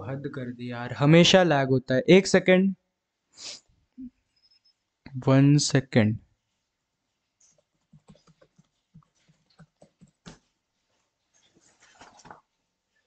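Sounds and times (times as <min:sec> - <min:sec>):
faint irregular clicks and taps: 0:07.3 - 0:12.5.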